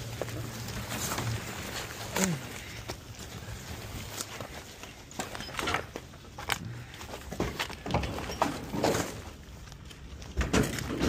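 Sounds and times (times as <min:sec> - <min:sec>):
cardboard and brush rustling: 0:00.0 - 0:11.0
footsteps: 0:00.0 - 0:11.0.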